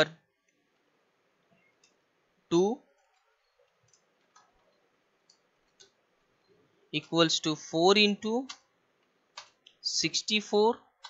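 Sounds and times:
computer keyboard clicks: 2.9s - 6.0s, 9.3s - 9.8s.

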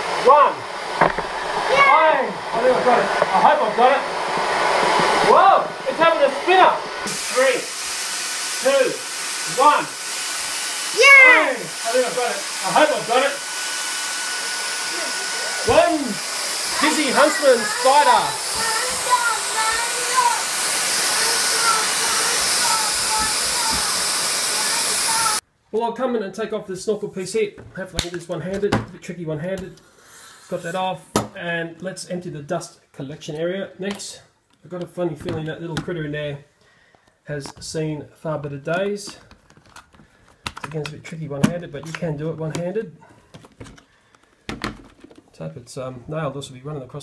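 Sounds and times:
stick vacuum running: 0.0s - 25.4s.

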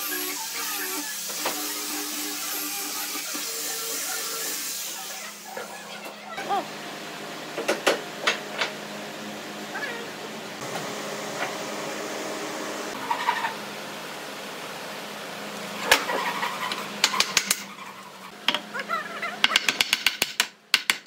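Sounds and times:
wooden workpieces knocking: 19.4s - 21.0s.

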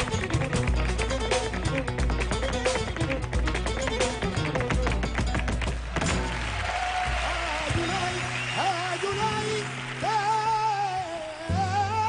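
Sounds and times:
flamenco guitar music: 0.0s - 12.0s.

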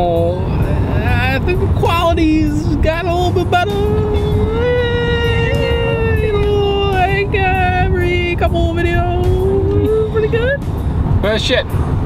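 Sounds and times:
car road and engine noise: 0.0s - 12.0s
person singing a long note: 3.6s - 6.9s.

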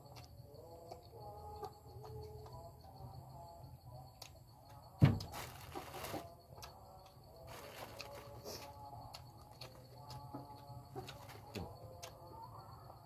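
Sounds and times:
sharp thump: 5.0s - 5.3s
person chewing: 6.1s - 12.3s.

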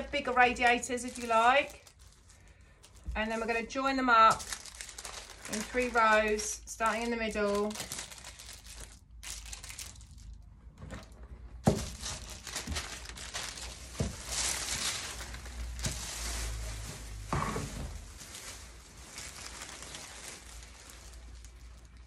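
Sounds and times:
packets and paper crinkling: 0.0s - 22.0s.

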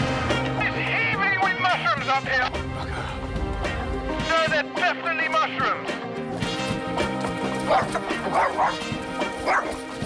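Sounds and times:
background music: 0.0s - 10.0s
dog barking: 7.6s - 10.0s.

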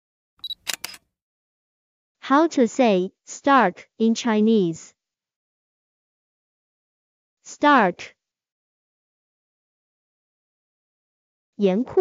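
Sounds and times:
camera shutter clicks: 0.4s - 1.0s.

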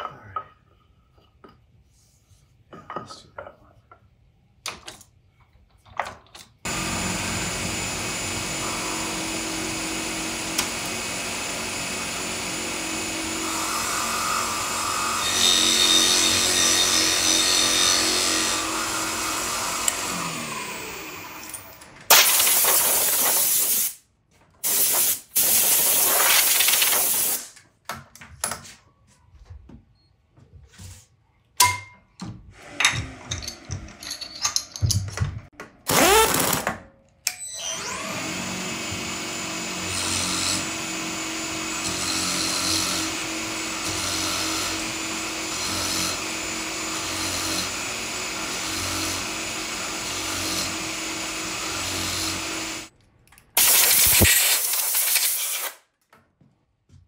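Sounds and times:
drill bit boring into wood: 6.7s - 21.8s, 35.9s - 36.7s, 37.5s - 52.9s
milling machine spindle running: 6.7s - 21.8s, 37.8s - 52.9s.

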